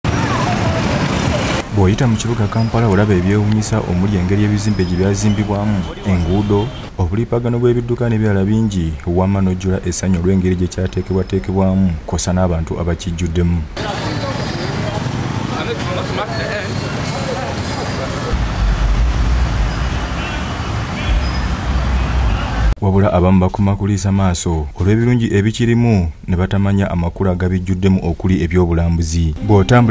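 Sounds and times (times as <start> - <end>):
motorcycles: 0.0 - 6.9, 13.8 - 22.7
minibus engine: 0.0 - 7.0, 13.7 - 22.8
passers-by voices: 0.0 - 7.1, 13.8 - 18.5
road noise: 0.0 - 22.8, 27.2 - 29.9
street traffic: 0.0 - 22.8, 28.5 - 29.9
narrator speaking: 0.3 - 14.6, 22.8 - 29.9
deep rumble: 18.4 - 20.1.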